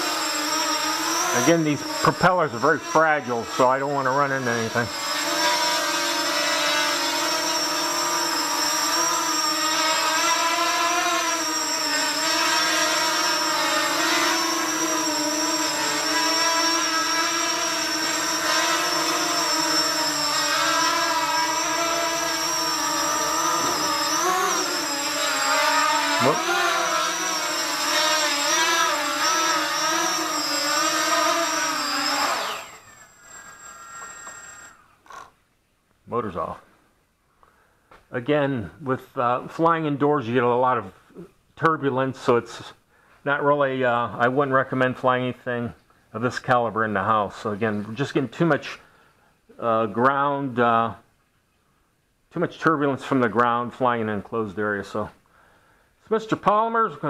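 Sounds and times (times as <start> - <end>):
quadcopter motors whining: 0.0 - 35.3.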